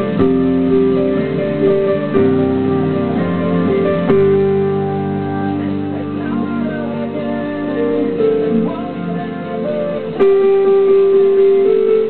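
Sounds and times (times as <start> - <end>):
digital piano chords: 0.0 - 12.0.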